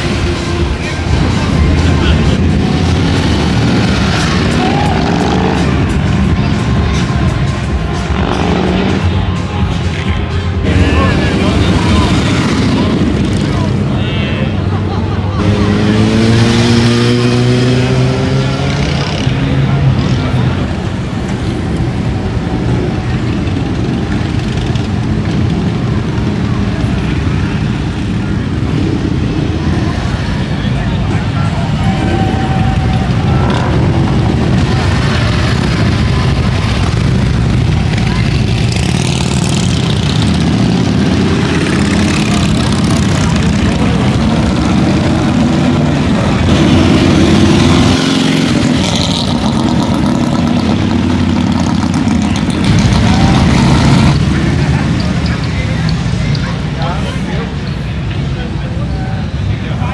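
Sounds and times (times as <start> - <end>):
motorcycles riding past: 0.0 - 58.9
voices of onlookers: 0.0 - 59.9.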